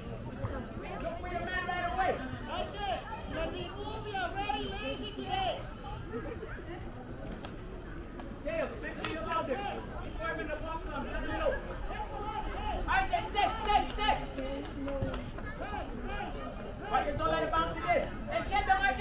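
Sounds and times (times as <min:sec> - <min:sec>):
people talking and calling out: 0:00.0 - 0:19.0.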